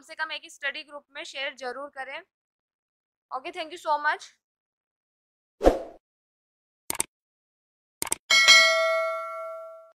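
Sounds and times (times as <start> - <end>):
notification bell ding: 8.3 - 10.0.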